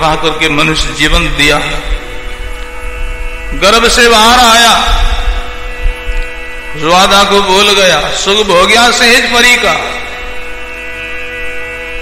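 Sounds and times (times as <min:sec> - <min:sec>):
keyboard holding a chord: 0:00.0 - 0:12.0.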